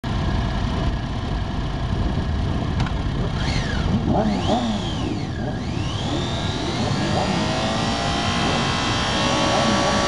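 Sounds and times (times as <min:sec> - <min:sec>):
motorcycle engines rumbling: 0:00.1 - 0:10.0
wind noise on microphone: 0:00.1 - 0:10.0
motorcycle engine revving: 0:01.9 - 0:10.0.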